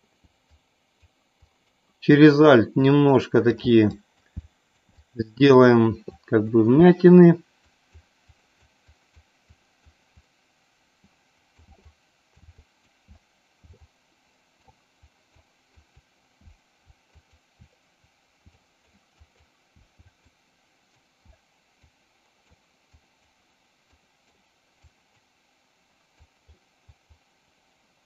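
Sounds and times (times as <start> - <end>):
faint room hum: 0.0 - 28.0
soft low thumps: 5.9 - 27.4.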